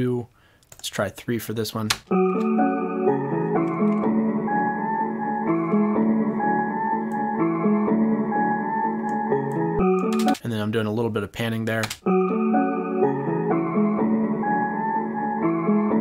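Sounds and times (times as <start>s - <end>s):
pitched melodic sample loop: 2.1s - 10.4s.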